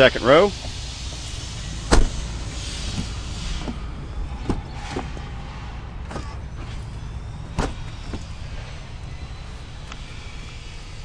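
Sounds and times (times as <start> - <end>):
low background rumble: 0.0 - 11.0
car door clicks: 1.9 - 2.2.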